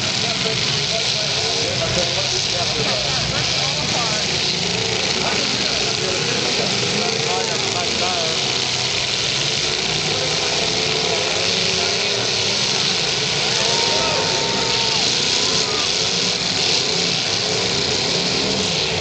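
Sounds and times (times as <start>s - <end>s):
car engines running: 0.0s - 19.0s
crowd voices: 0.0s - 19.0s.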